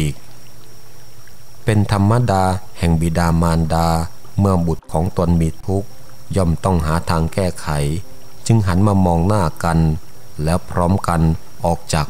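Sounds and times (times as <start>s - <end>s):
person narrating: 0.0s - 0.3s, 1.7s - 12.0s
soft steady background bed: 0.0s - 12.0s.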